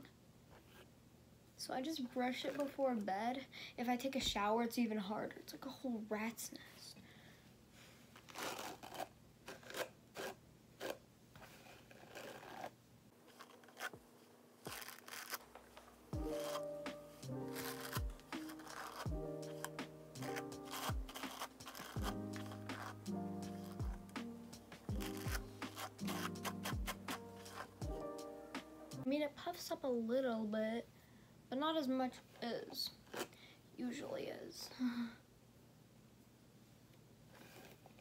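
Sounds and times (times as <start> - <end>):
hairbrush swishing through hair: 16.2 - 28.1.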